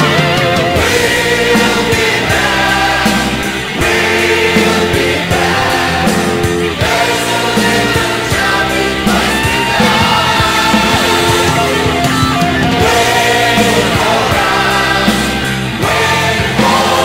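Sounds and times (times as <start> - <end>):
heavy rock band: 0.0 - 17.0
voices singing in chorus: 0.0 - 17.0.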